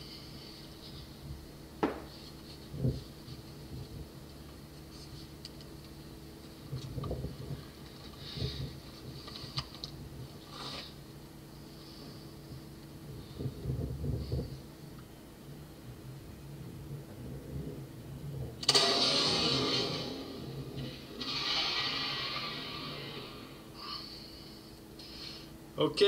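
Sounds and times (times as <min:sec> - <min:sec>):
rifle shot with rumbling echo: 0:18.6 - 0:23.4.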